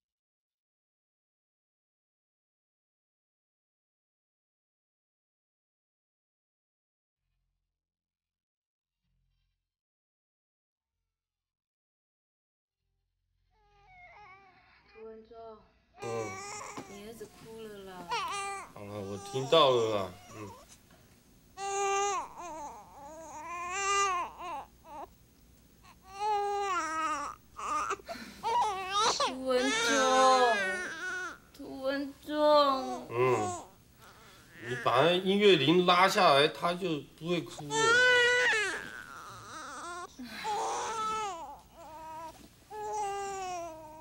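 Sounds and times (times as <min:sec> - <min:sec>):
baby crying: 0:13.6 - 0:14.7, 0:16.0 - 0:17.2, 0:18.0 - 0:20.6, 0:21.6 - 0:25.1, 0:25.8 - 0:31.4, 0:32.6 - 0:35.3, 0:37.6 - 0:44.0.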